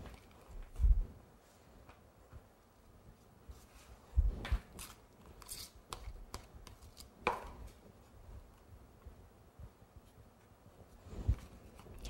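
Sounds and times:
spatula scraping: 4.7 - 7.2.

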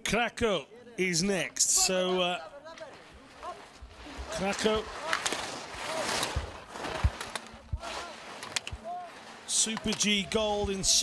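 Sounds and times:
skis carving on hard snow: 2.8 - 11.0.

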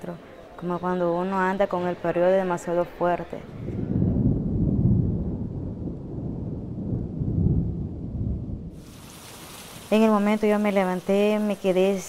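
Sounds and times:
thunder rumbling: 3.4 - 11.8
rain hissing: 8.7 - 12.0.

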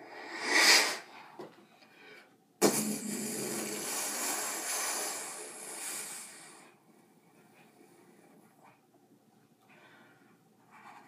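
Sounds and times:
mouth-made hissing rush: 2.6 - 6.8.

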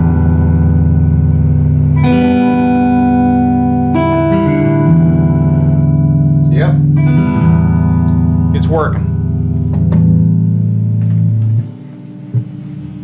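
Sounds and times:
electric guitar chords with reverb: 0.0 - 13.0.

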